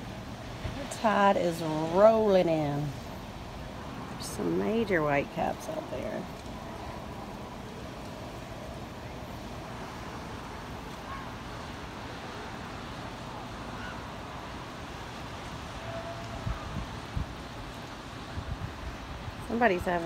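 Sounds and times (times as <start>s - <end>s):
distant surf breaking: 0.0s - 20.0s
wind blowing across microphone: 0.0s - 20.0s.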